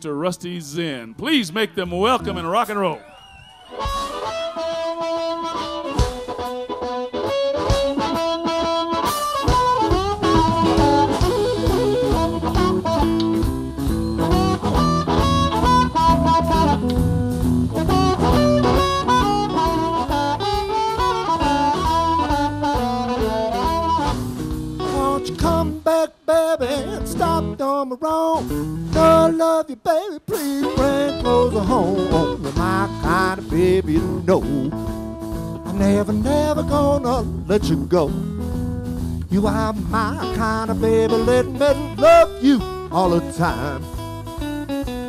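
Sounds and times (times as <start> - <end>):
drums: 1.3 - 45.0
electric guitar: 3.0 - 45.0
harmonica: 3.7 - 16.9, 17.8 - 24.4
bass guitar: 3.8 - 29.5, 30.3 - 45.0.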